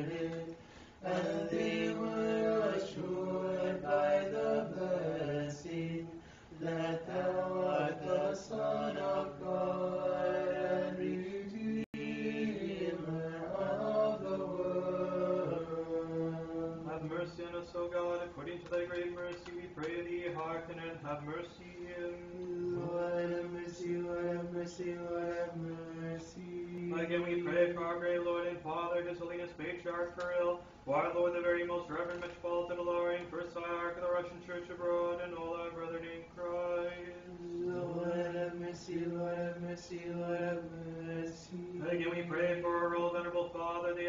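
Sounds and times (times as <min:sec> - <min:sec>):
voices chanting: 0:00.0 - 0:17.4
voices chanting a hymn: 0:00.0 - 0:44.0.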